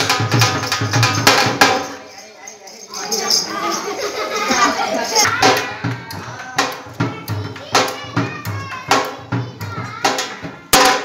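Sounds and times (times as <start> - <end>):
drum beaten with sticks: 0.0 - 2.1, 5.1 - 11.0
children calling: 1.9 - 11.0.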